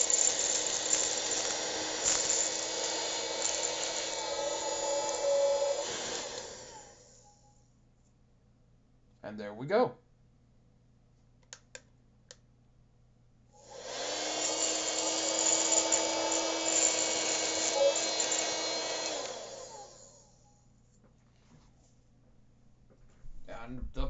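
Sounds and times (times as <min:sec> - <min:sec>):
vacuum cleaner motor whining: 0:00.0 - 0:07.5, 0:13.6 - 0:20.4.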